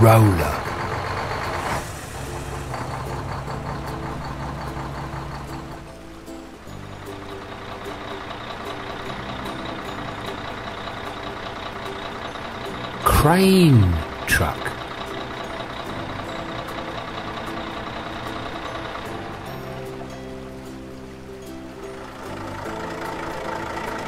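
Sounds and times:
light background music: 0.0 - 24.0.

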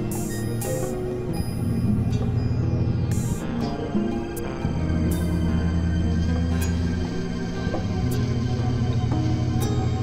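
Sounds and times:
synthesizer drones: 0.0 - 10.0.

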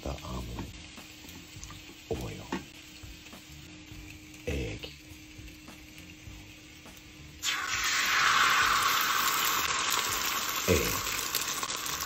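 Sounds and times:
egg sizzling in hot pan: 0.0 - 12.0.

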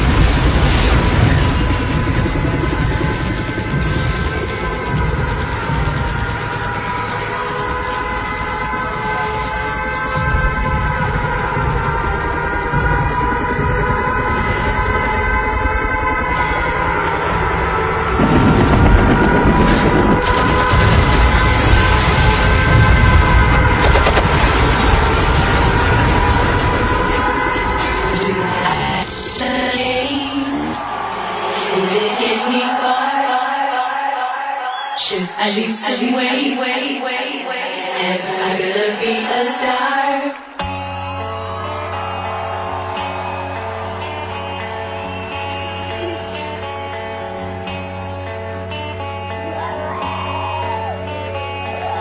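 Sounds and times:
dense wash of noise: 0.0 - 40.6
low bass rumble: 10.2 - 27.8.

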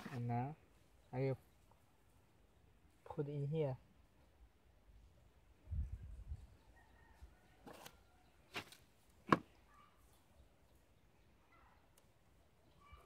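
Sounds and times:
sharp handling clicks or scrapes: 7.6 - 9.4.

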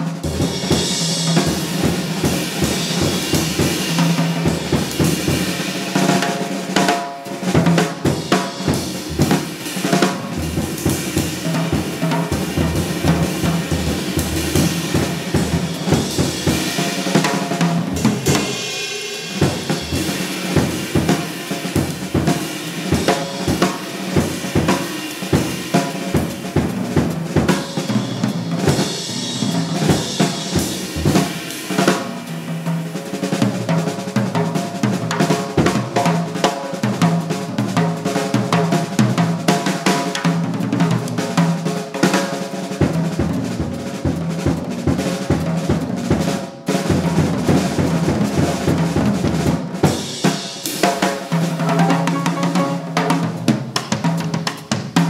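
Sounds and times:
jazz drum solo: 0.0 - 55.0.

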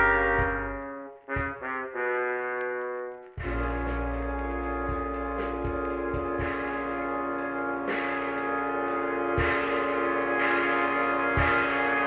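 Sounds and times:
struck beat: 0.0 - 7.1
sustained chord of steady tones: 3.5 - 12.0.

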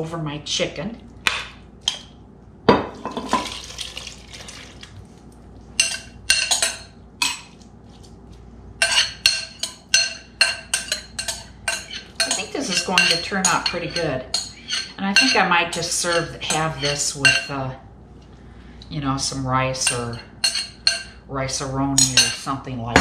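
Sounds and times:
sauce pouring from bowl: 3.4 - 5.2
metal spoon scraping bowl: 8.8 - 17.6.

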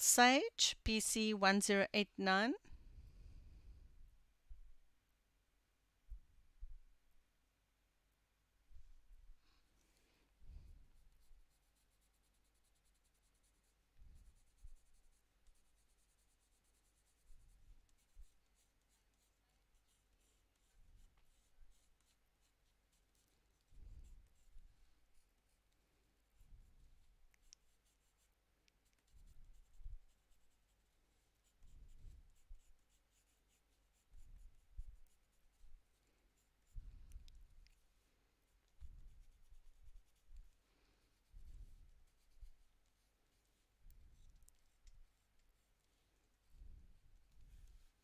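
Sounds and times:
coloured pencil strokes on paper: 10.4 - 48.0.

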